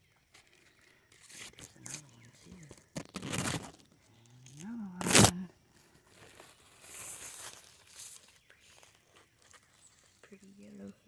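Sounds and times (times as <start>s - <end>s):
faint rustling and crinkling: 0.0s - 11.0s.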